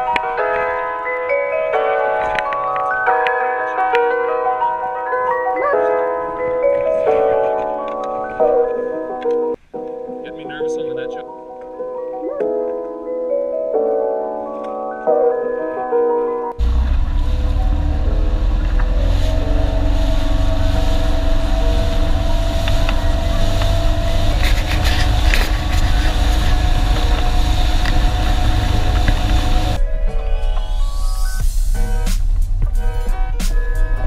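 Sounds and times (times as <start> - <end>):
music with mallet-like tones: 0.0 - 16.6
rushing water: 16.6 - 29.8
motorboat engine rumble: 16.6 - 34.0
wind buffeting microphone: 16.6 - 34.0.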